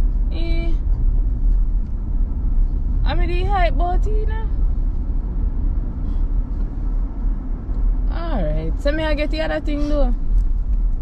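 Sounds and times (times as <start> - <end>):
car cabin road rumble: 0.0 - 11.0.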